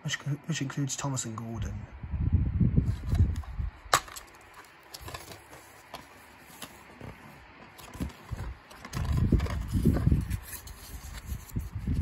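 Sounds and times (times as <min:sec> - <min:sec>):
camera handling bumps and rubs: 0:02.8 - 0:12.0.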